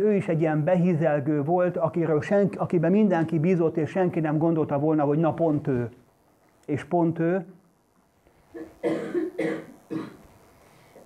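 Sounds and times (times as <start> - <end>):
man coughing: 8.6 - 10.2.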